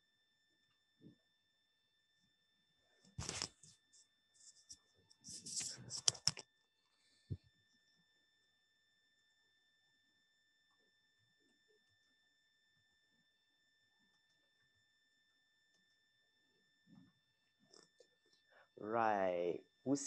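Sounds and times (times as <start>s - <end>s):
faint high whine: 0.0s - 20.0s.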